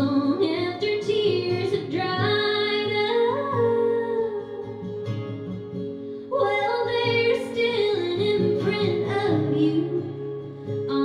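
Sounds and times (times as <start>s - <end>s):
woman singing slow song: 0.0s - 5.1s, 6.3s - 11.0s
acoustic guitar: 0.0s - 11.0s.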